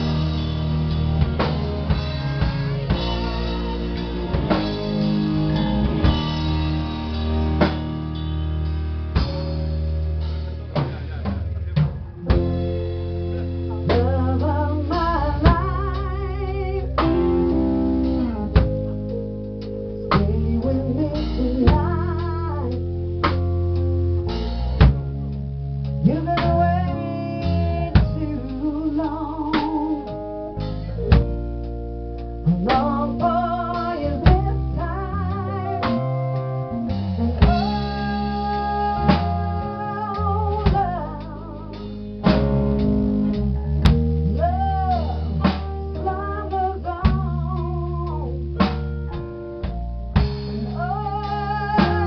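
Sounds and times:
bass and drums: 0.0 - 52.0
live band playing: 0.0 - 52.0
sustained guitar notes: 0.0 - 52.0.

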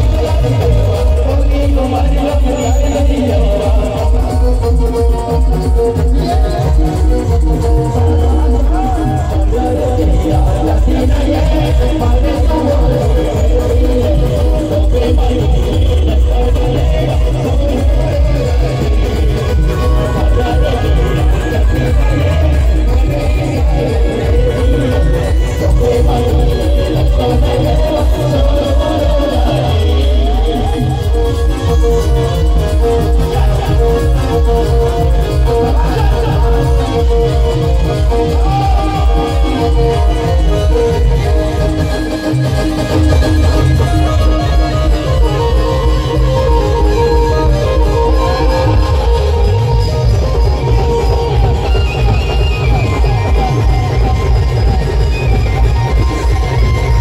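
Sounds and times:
electronic keyboard melody: 0.0 - 57.0
loud live band music: 0.0 - 57.0
pounding bass beat: 0.0 - 57.0.

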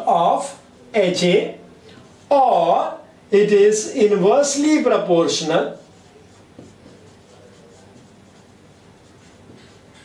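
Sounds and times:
marker writing on whiteboard: 4.5 - 10.0.

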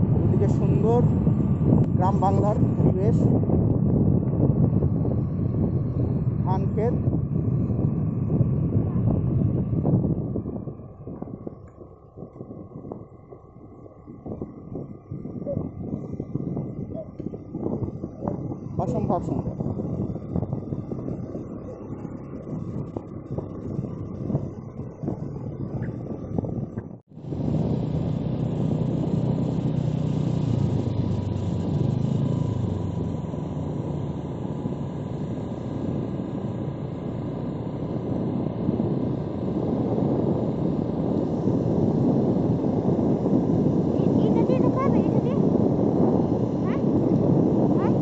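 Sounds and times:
vehicle engine and road rumble: 0.0 - 48.0.

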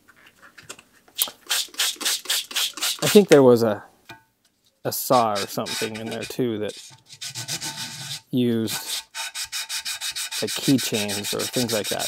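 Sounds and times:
spray bottle squirting: 1.2 - 3.3.

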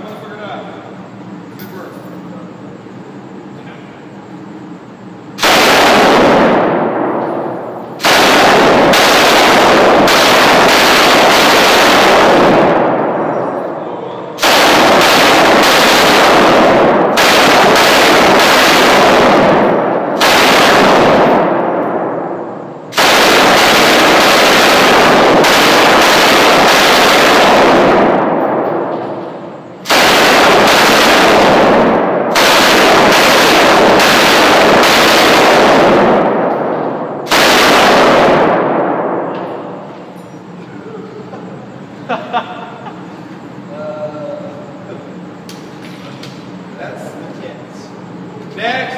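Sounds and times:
machine gun automatic bursts: 5.4 - 7.0, 8.0 - 13.1, 14.4 - 21.6, 22.9 - 28.4, 29.8 - 36.5, 37.3 - 38.8
gunfire echo off concrete walls: 5.4 - 39.9.

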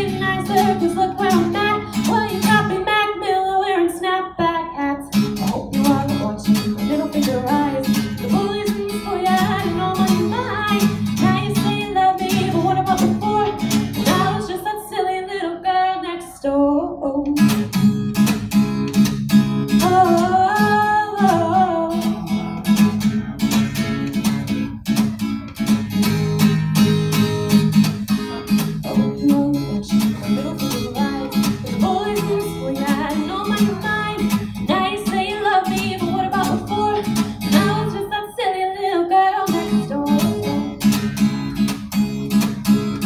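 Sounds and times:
strummed acoustic guitar: 0.0 - 16.0, 17.3 - 43.0
woman singing: 0.0 - 17.7, 19.7 - 22.5, 28.5 - 41.1.

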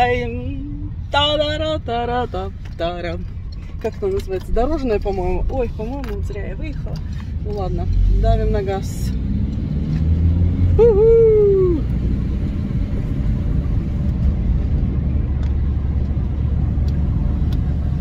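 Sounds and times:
engine and road rumble: 0.0 - 18.0.

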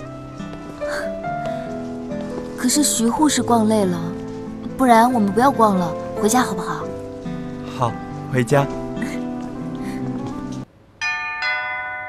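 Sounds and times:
background music: 0.0 - 10.7
two-note doorbell chime: 11.0 - 12.0.

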